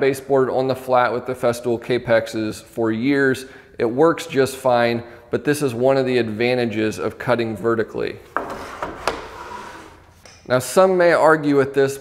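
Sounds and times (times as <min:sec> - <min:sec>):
wood scraping against saw fence: 0:08.4 - 0:10.0.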